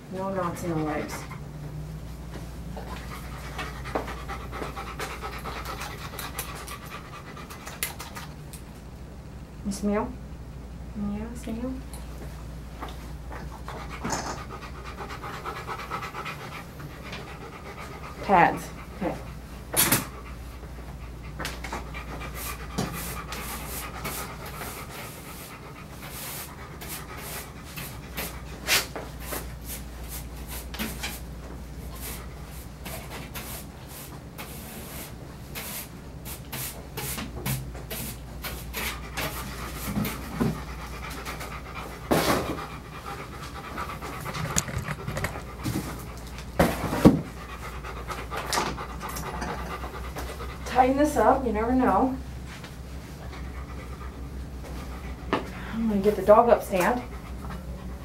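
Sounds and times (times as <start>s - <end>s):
dog panting: 0.6s - 1.6s, 2.8s - 8.4s, 13.4s - 29.9s, 38.4s - 52.2s, 53.0s - 58.0s.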